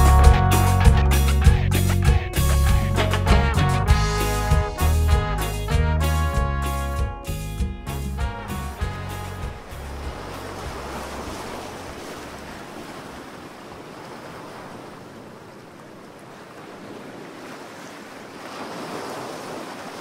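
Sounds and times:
ocean waves breaking on beach: 0:08.2 - 0:20.0.

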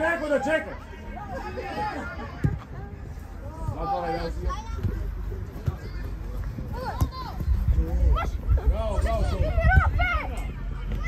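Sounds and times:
people shouting on a football pitch: 0:00.0 - 0:05.0, 0:05.7 - 0:11.0.

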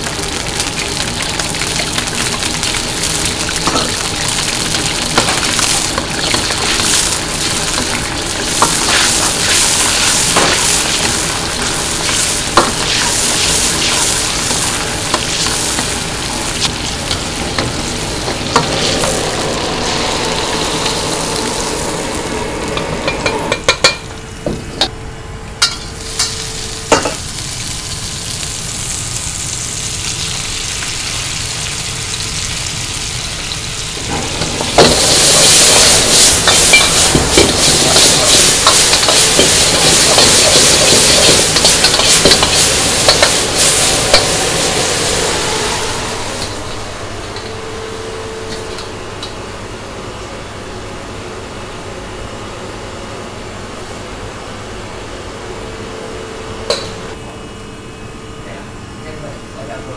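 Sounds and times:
shrimp sizzling in a wok: 0:00.0 - 0:24.1, 0:25.7 - 0:49.4.

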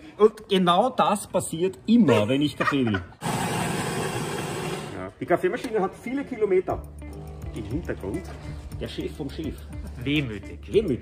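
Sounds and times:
coffee machine whirring: 0:03.2 - 0:05.0.

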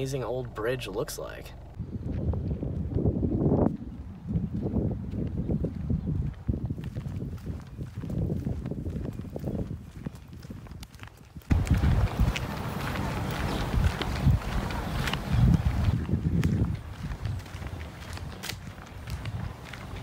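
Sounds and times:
footsteps in slide sandals: 0:10.9 - 0:20.0.

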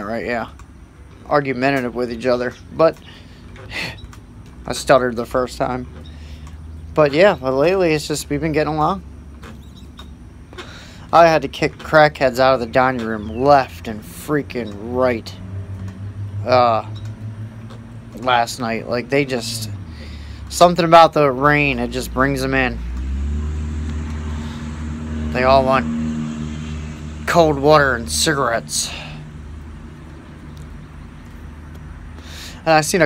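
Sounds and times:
man exhaling cigarette smoke: 0:32.1 - 0:32.6.

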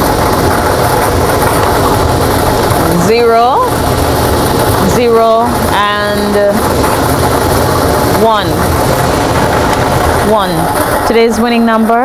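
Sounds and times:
lottery balls rattling: 0:00.0 - 0:12.0.

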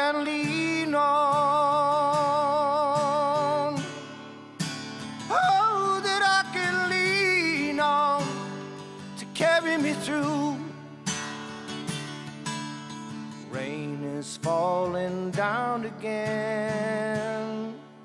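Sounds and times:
man singing with vibrato: 0:00.0 - 0:11.3, 0:13.3 - 0:18.0
acoustic guitar strumming: 0:00.0 - 0:18.0.

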